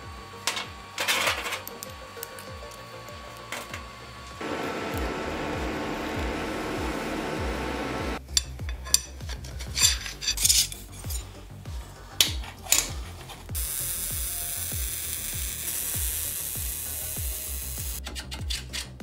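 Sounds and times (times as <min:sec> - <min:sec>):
welding crackling hiss: 0:00.0 - 0:08.2, 0:12.8 - 0:18.0
background music with steady beat: 0:00.0 - 0:19.0
steel parts scraping and clinking: 0:00.4 - 0:03.9, 0:08.2 - 0:11.6, 0:12.2 - 0:13.5, 0:18.0 - 0:19.0.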